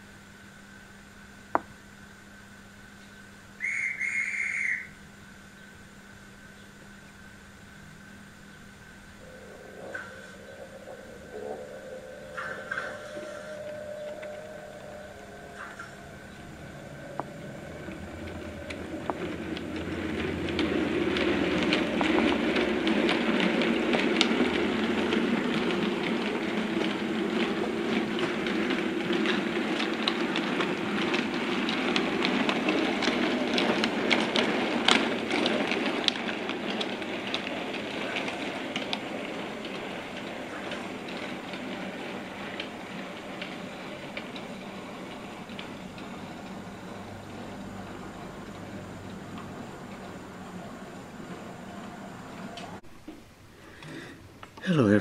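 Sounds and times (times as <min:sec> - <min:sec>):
model train wheels clicking on rails: 0:03.6 - 0:04.9, 0:08.7 - 0:55.0.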